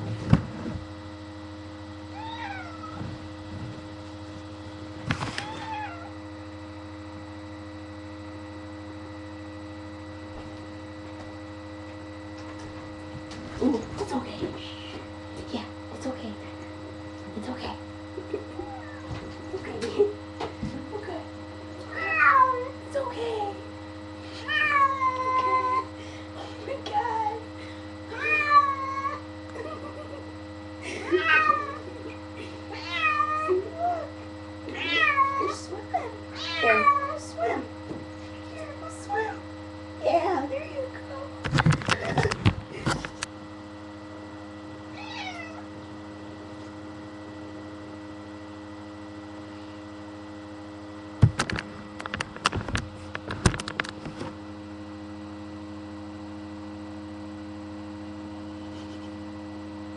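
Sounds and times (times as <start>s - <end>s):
steady low hum: 0.0s - 59.9s
cat meowing: 2.1s - 3.0s, 5.4s - 6.1s, 21.9s - 22.7s, 28.2s - 29.2s, 32.7s - 34.0s, 34.8s - 35.5s, 36.4s - 37.2s, 45.0s - 45.6s.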